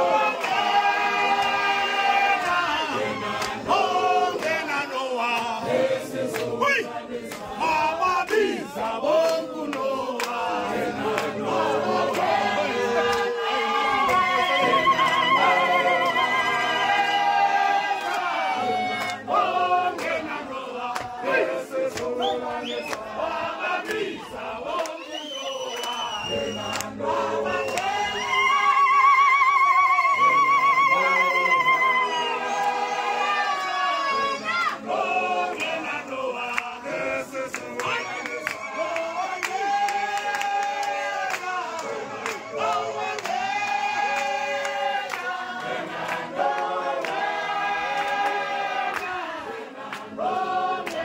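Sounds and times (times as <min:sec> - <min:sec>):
group of voices singing: 0:00.0 - 0:51.0.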